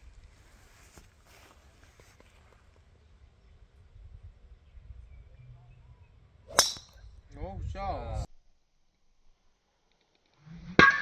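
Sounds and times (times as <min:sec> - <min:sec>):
golf club striking ball: 0:06.5 - 0:07.0.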